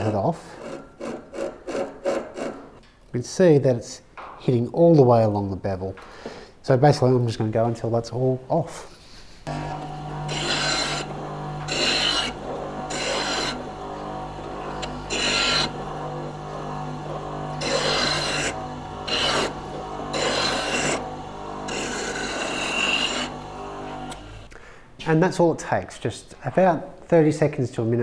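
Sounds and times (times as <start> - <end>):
rasping grind of steel on wheel: 0.0 - 2.8, 9.5 - 24.5
bench grinder motor hum: 9.5 - 24.5.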